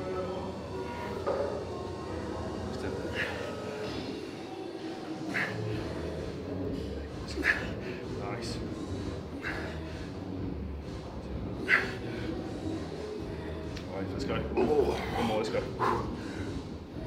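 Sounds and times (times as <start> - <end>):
faint music: 0.0 - 17.0
low voices: 0.0 - 17.0.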